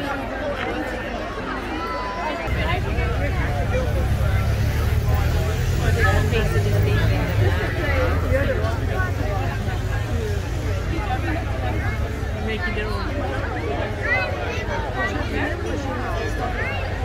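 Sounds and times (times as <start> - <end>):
crowd chatter: 0.0 - 17.0
motorcycle engines humming: 2.5 - 17.0.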